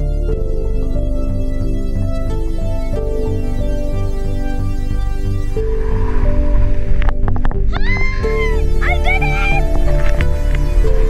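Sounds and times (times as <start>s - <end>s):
background music: 0.0s - 11.0s
woman shrieking excitedly: 7.7s - 9.6s.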